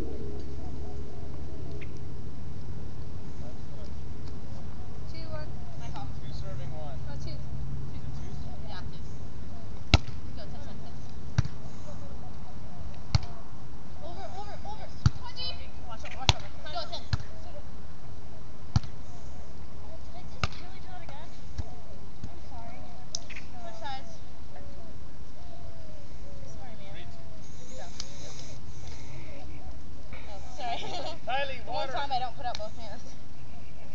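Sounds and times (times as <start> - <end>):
faint voices calling: 0.0 - 33.9
volleyball slaps: 9.8 - 10.3, 11.3 - 11.6, 12.9 - 13.4, 16.0 - 17.4, 18.7 - 19.0, 20.3 - 22.4.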